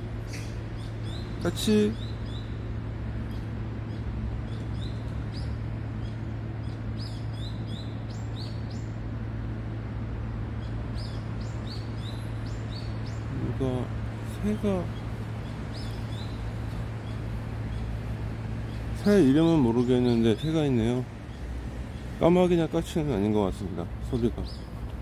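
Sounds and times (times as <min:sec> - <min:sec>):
steady low hum: 0:00.0 - 0:25.0
small bird chirping: 0:00.3 - 0:09.0, 0:10.6 - 0:22.3.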